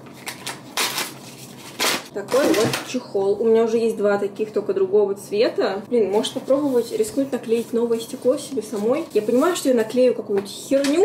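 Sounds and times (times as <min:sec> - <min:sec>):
packaging tearing and crinkling: 0:00.1 - 0:02.1.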